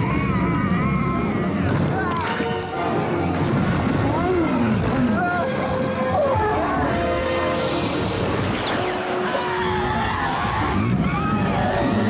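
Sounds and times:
battle sound effects: 4.2s - 11.0s.

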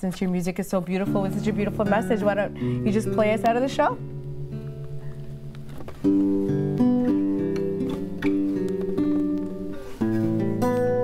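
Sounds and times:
acoustic guitar chords: 1.0s - 11.0s.

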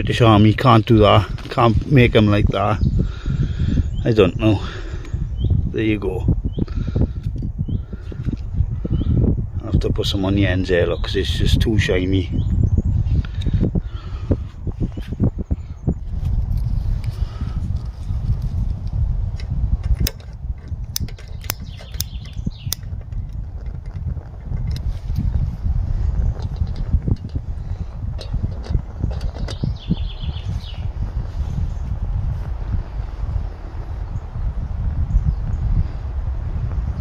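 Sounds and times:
low rumble: 12.3s - 37.0s.

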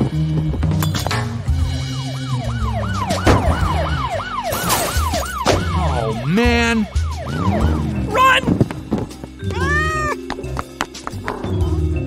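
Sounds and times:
background music with low bass: 0.0s - 12.0s
police siren yelping: 1.7s - 8.7s.

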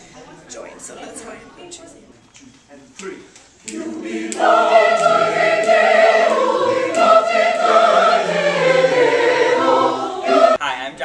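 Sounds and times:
mixed choir singing: 3.6s - 10.6s.

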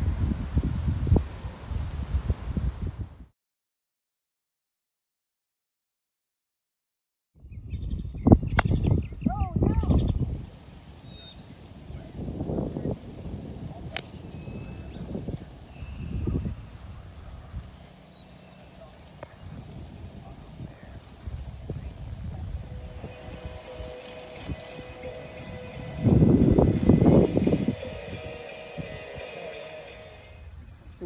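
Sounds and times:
low rumbling noise: 10.2s - 31.0s.

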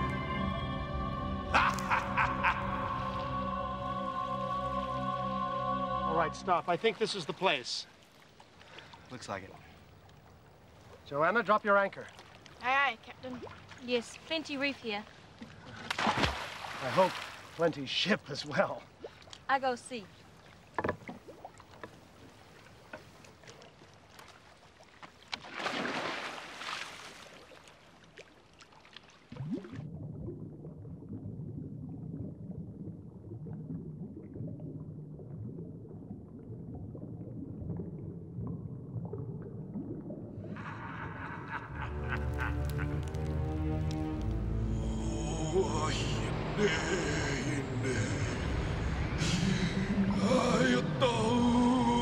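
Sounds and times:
music: 0.0s - 6.7s, 41.8s - 46.2s
water lapping against canoe: 6.5s - 29.9s
splash of swimmer diving: 15.8s - 17.6s, 25.4s - 29.8s
muffled underwater drone: 30.0s - 52.0s.

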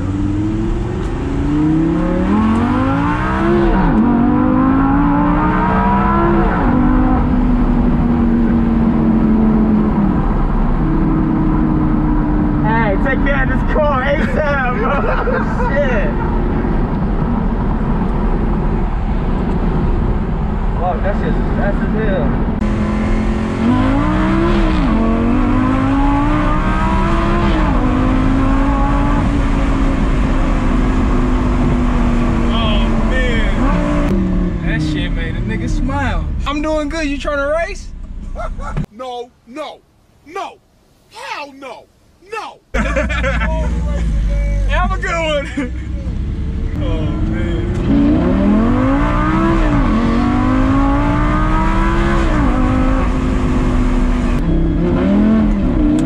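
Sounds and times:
car engine accelerating through gears: 0.0s - 13.0s, 22.3s - 36.5s, 45.7s - 56.0s.

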